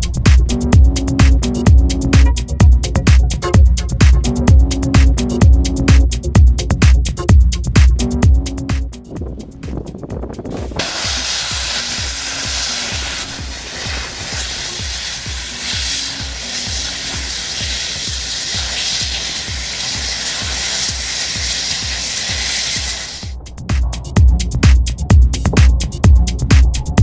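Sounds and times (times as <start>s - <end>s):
electronic music beat: 0.0s - 27.0s
jet fire hissing: 10.8s - 23.3s.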